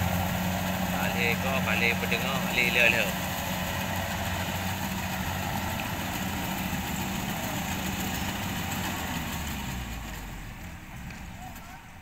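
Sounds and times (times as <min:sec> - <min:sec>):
combine harvester humming: 0:00.0 - 0:11.9.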